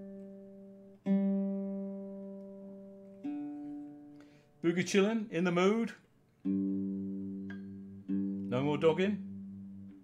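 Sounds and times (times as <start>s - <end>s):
low guitar string plucked: 6.4s - 10.0s.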